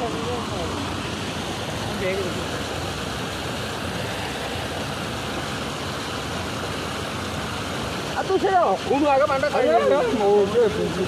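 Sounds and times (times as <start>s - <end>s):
fast-flowing water rushing: 0.0s - 11.0s.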